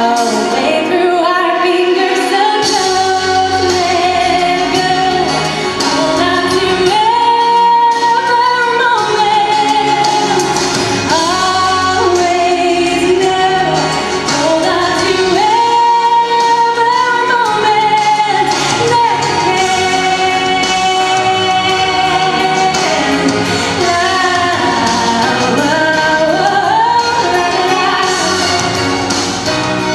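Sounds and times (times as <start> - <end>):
woman singing: 0.0 - 29.6
musical accompaniment: 0.0 - 29.9.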